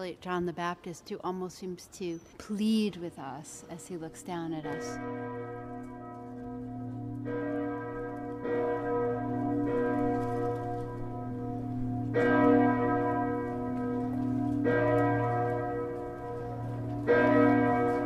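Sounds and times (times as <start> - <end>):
church bells ringing: 2.9 - 18.0.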